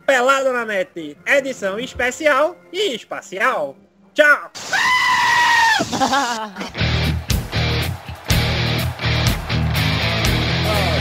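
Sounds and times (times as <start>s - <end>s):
high-pitched bleating scream: 4.6s - 6.1s
electric guitar music: 6.8s - 11.0s.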